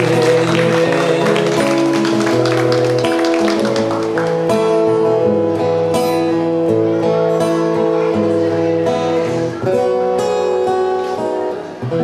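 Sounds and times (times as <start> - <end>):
man singing: 0.0 - 2.5
strummed acoustic guitar: 0.0 - 12.0.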